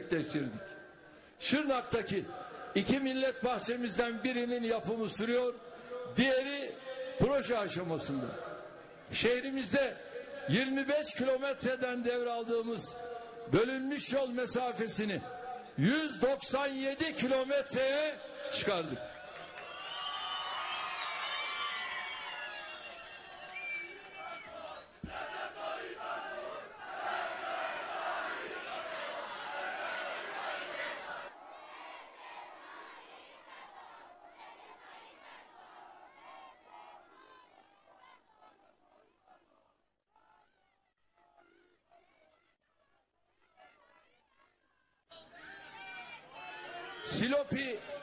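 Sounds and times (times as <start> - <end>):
crowd shouting and cheering: 17.3 - 48.0.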